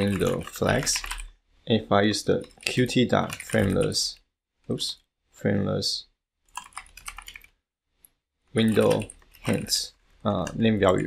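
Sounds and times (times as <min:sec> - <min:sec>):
computer keyboard typing: 0:00.0 - 0:01.3, 0:02.4 - 0:04.2, 0:06.5 - 0:07.6, 0:08.6 - 0:10.6.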